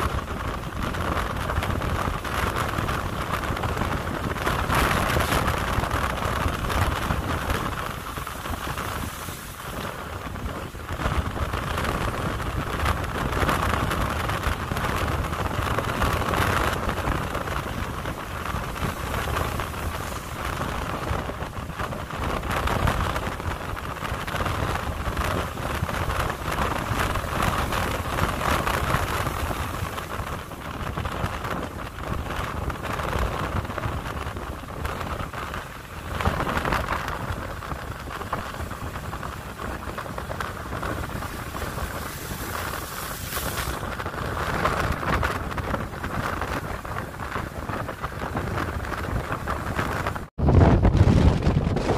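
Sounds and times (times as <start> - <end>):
sea surf breaking: 1.5 - 50.3.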